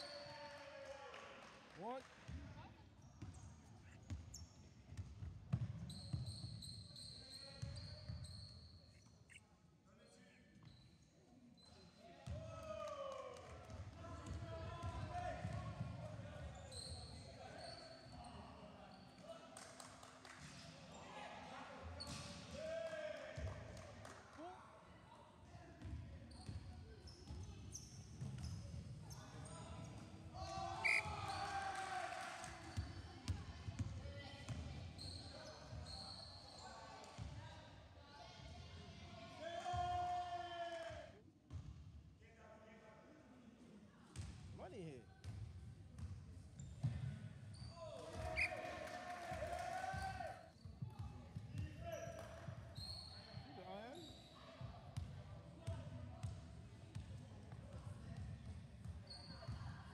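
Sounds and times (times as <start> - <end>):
players calling out: 30.5 - 32.1.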